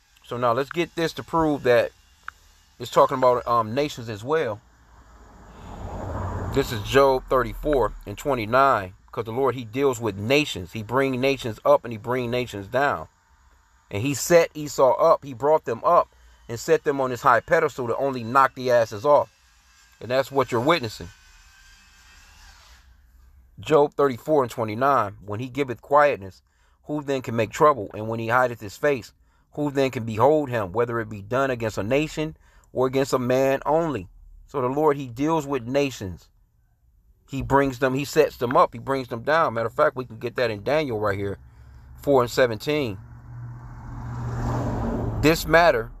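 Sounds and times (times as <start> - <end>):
steady low hum: 0.0 - 18.4, 29.2 - 46.0
motor vehicle passing: 0.4 - 13.0, 37.3 - 46.0.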